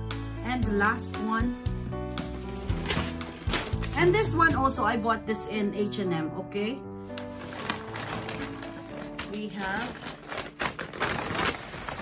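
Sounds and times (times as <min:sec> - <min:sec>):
paper bag rustling: 0:02.1 - 0:04.8, 0:07.0 - 0:12.0.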